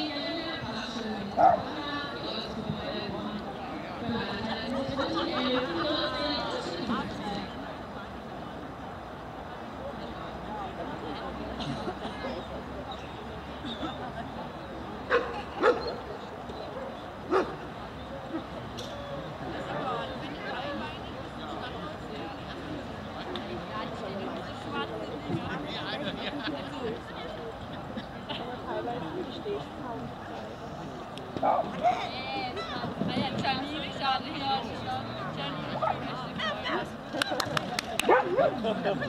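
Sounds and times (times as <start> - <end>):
murmur of spectators talking: 0.0 - 39.0
dog bark: 17.3 - 17.6, 38.1 - 38.5.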